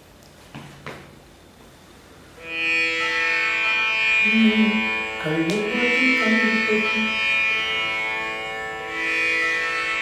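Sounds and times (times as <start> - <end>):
indian classical string music: 2.3 - 10.0.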